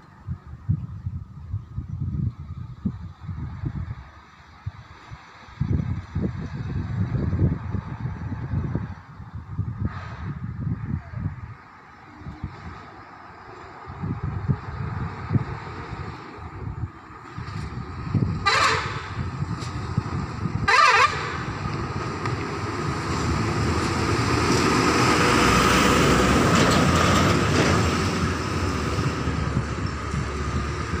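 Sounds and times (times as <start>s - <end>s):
heavy trucks passing: 2.4s - 31.0s
truck horn blasts: 18.4s - 19.3s, 20.6s - 21.6s.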